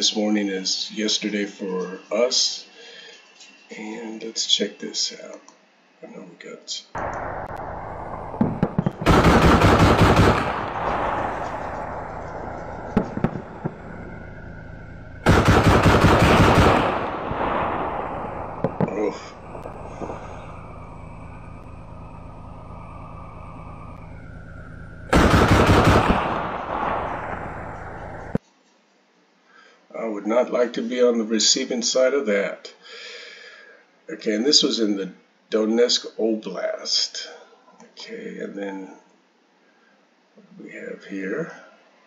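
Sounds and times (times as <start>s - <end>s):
autocannon firing bursts: 7.0s - 20.7s, 25.1s - 28.4s
single shots or distant impacts: 7.0s - 28.4s
vehicle engine running: 7.0s - 28.4s.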